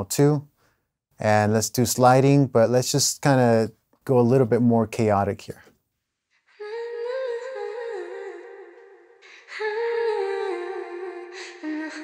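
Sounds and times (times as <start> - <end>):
woman singing long notes: 6.6 - 12.0.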